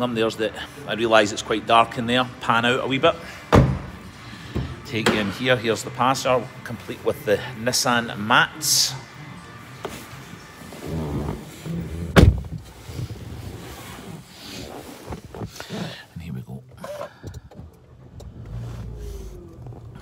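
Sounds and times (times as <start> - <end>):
rustling and knocks in car: 10.7 - 15.8.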